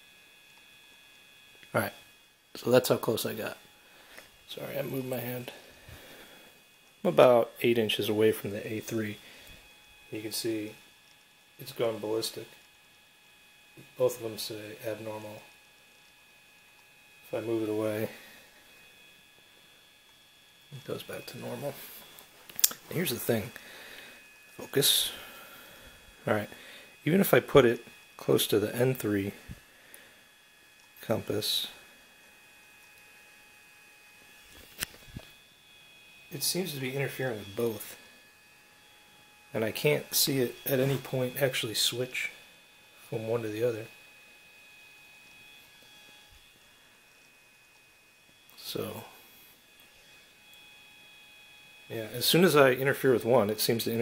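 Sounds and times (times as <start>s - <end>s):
faint high-pitched electronic whine: 0.0s - 54.0s
faint high-pitched hum: 0.0s - 54.0s
man speaking: 1.8s - 2.0s, 2.6s - 3.6s, 4.5s - 5.6s, 7.0s - 9.2s, 10.1s - 10.8s, 11.6s - 12.6s, 14.0s - 15.4s, 17.3s - 18.2s, 20.8s - 22.0s, 22.8s - 23.6s, 24.6s - 25.3s, 26.2s - 29.4s, 31.0s - 31.8s, 36.3s - 38.0s, 39.6s - 42.4s, 43.1s - 43.9s, 48.6s - 49.2s, 51.9s - 54.0s.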